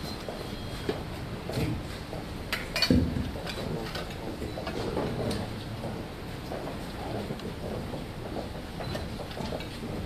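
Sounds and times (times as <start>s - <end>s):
low room rumble: 0.0s - 10.0s.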